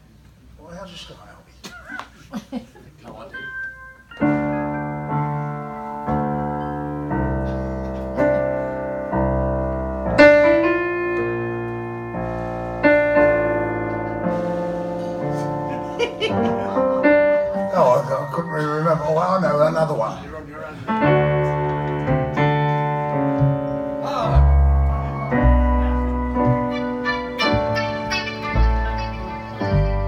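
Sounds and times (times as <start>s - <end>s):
electric piano descending chords: 3.3s - 30.0s.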